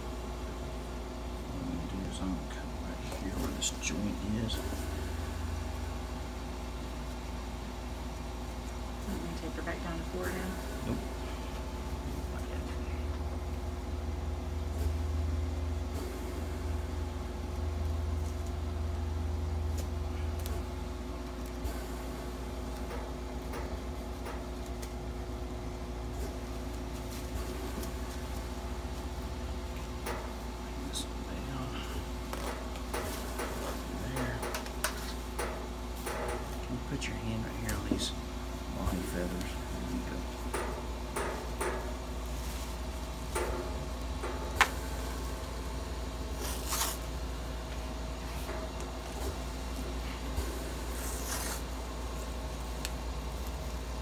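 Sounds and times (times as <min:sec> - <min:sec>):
electrical hum: 0:00.0 - 0:54.0.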